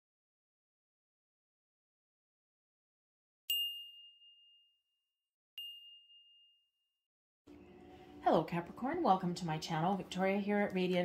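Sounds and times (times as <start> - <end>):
high bell-like chime: 3.5 - 4.8, 5.6 - 6.7
faint room hiss: 7.5 - 11.0.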